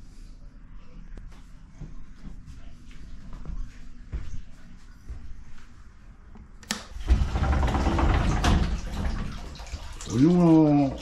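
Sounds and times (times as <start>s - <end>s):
water pouring into a bath: 7.0s - 11.0s.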